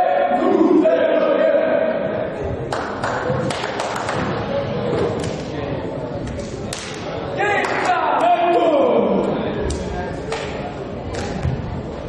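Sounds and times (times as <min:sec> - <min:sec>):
players shouting in a sports hall: 0:00.0 - 0:02.7, 0:06.8 - 0:09.6.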